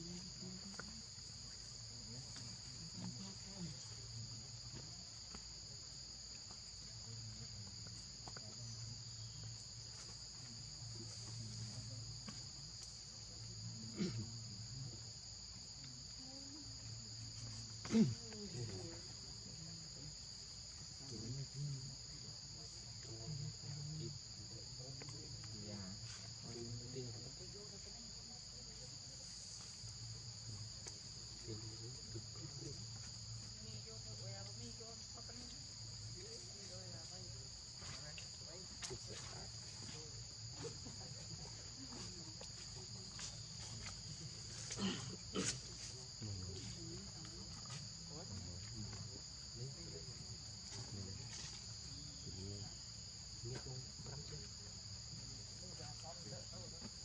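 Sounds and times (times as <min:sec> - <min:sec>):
insect chorus droning: 0:00.0 - 0:57.0
person murmuring and laughing: 0:44.2 - 0:46.8.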